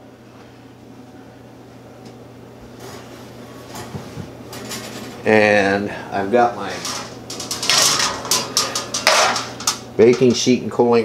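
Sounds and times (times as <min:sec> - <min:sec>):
baking sheet clattering on countertop: 0:06.6 - 0:10.4.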